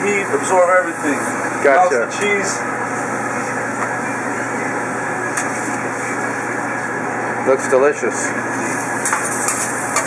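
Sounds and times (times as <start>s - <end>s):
exhaust fan whoosh and hum: 0.0s - 10.0s.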